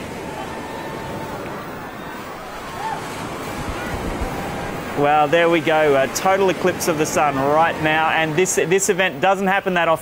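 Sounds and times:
steady rushing noise: 0.0s - 9.2s
distant crowd voices: 0.0s - 10.0s.

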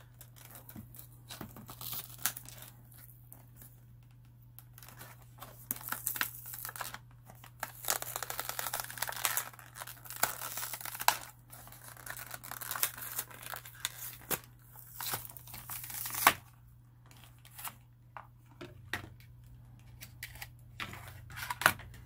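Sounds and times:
cardboard ripping and crinkling: 4.8s - 16.5s.

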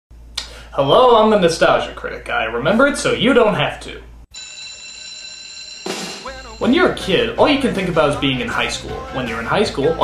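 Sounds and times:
school bell ringing: 4.3s - 7.9s.

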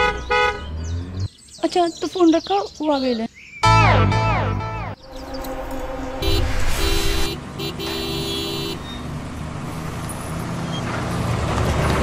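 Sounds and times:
car horn honking: 0.0s - 0.8s, 5.5s - 9.0s
vehicle engine and tyre rumble: 0.0s - 3.6s, 5.0s - 12.0s.

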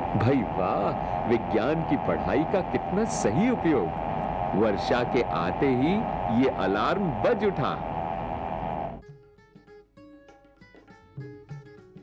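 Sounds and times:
alarm speaker tone: 0.0s - 9.0s
rain hissing: 0.0s - 9.0s.

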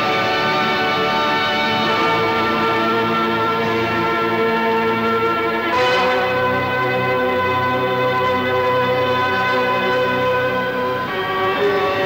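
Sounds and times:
sustained chords: 0.0s - 12.0s.

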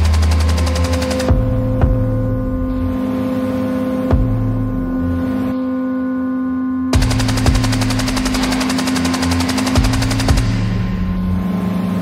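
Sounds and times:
low electronic drone: 0.0s - 12.0s
low pulsing bass: 0.0s - 12.0s.

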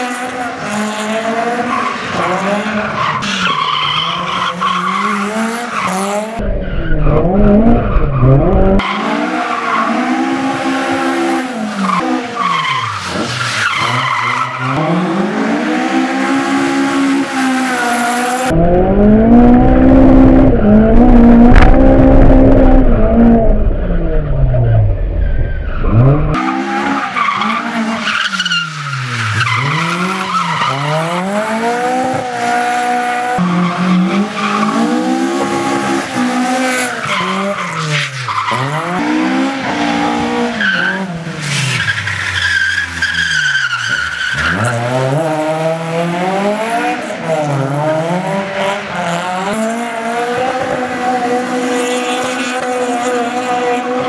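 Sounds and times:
car engine revving: 3.7s - 54.0s.

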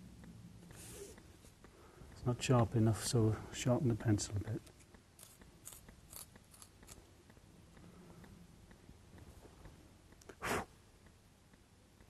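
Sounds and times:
pencil being sharpened: 5.2s - 7.0s.

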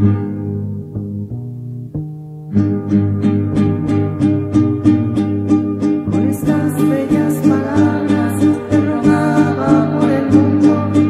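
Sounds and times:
bass line: 0.0s - 11.0s
plucked guitar notes: 0.0s - 11.0s.

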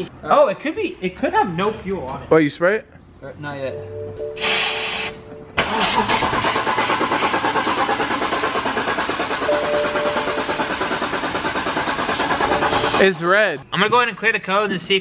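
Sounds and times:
car engine cranking on starter: 5.6s - 13.1s.

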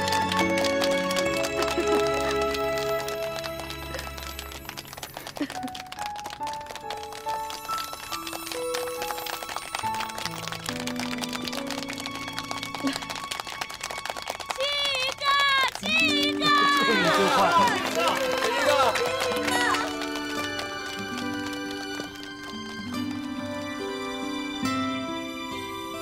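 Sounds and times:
soft slow background music: 0.0s - 14.4s, 16.0s - 26.0s
voices calling out: 15.2s - 22.0s.

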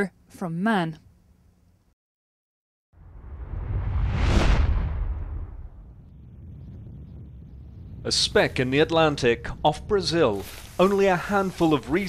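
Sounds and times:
deep whoosh effect: 3.0s - 10.0s
steady low rumble: 3.0s - 12.0s.

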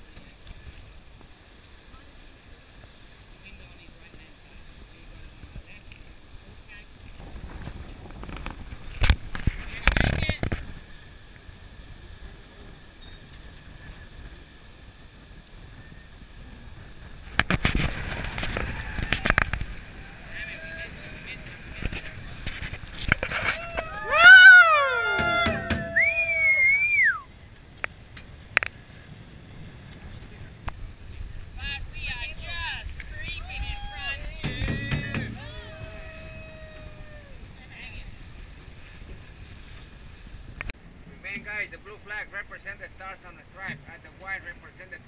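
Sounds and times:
water rushing past hull: 0.0s - 45.0s
wind: 0.0s - 45.0s
person shouting: 23.6s - 26.7s, 35.0s - 37.4s
deck gear knocking and clattering: 34.3s - 35.4s.

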